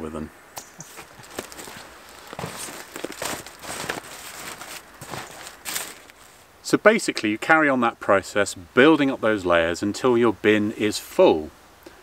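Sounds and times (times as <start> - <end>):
cardboard rustling and scraping: 0.8 - 6.5.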